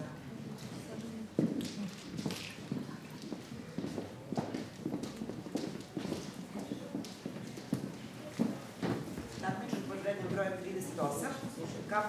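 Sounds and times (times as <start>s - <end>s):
murmur of voices: 0.0s - 12.0s
footsteps on hard floor: 2.2s - 10.6s.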